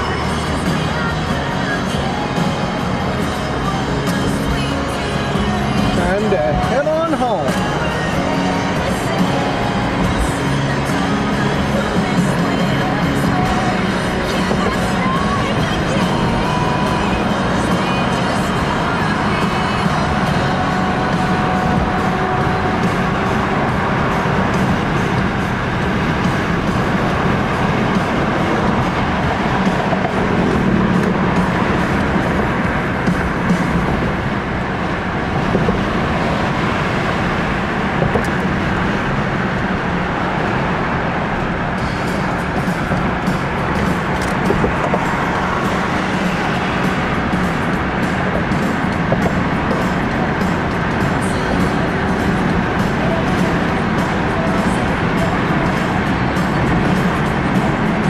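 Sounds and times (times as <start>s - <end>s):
music playing in a car: 0.0s - 58.0s
road and tyre noise: 0.0s - 58.0s.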